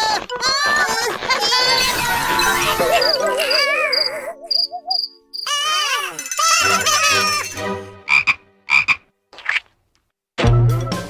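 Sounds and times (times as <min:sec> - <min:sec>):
cartoon cricket chirping: 0:02.4 - 0:05.9.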